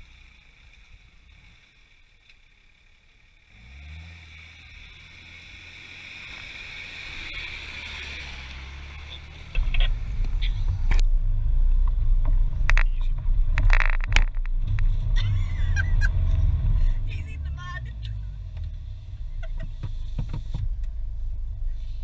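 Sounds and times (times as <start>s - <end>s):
engine rumbling: 0.0s - 22.0s
sharp knocks and rattles: 11.8s - 15.0s.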